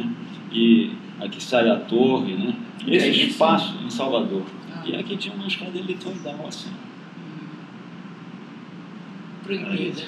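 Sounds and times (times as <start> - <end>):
room tone hum and hiss: 0.0 - 10.0.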